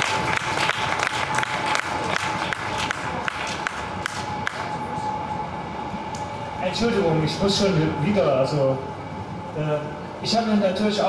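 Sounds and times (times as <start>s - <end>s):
small crowd applauding: 0.0s - 4.7s.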